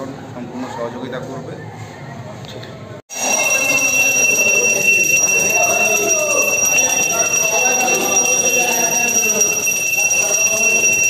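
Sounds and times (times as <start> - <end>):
worship bell ringing: 3.1 - 11.0.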